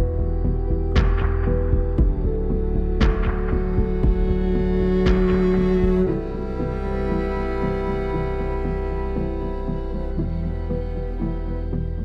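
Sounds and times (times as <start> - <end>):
slow low background music: 0.0 - 12.0.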